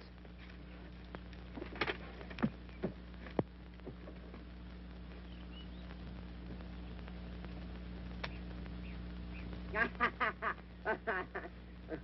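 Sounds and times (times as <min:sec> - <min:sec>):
film soundtrack hum: 0:00.0 - 0:12.0.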